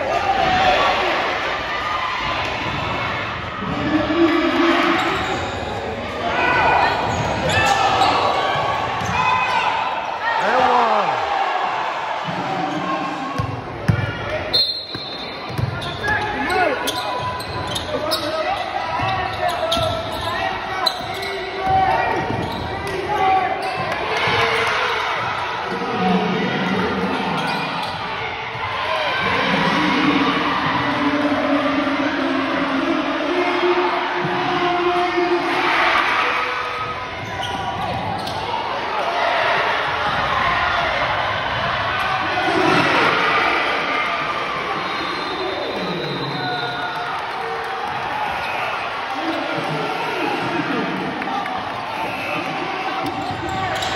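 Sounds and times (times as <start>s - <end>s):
many voices in a hall: 0.0s - 53.9s
basketball bouncing on court: 13.4s - 14.3s, 14.9s - 18.3s.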